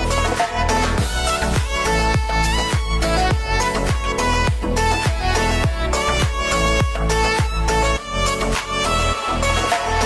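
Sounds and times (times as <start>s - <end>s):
electronic dance beat: 0.0s - 10.0s
violin melody: 0.0s - 10.0s.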